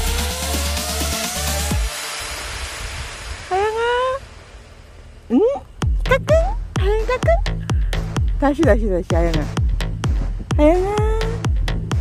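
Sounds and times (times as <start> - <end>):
steady hiss: 0.3 - 5.9.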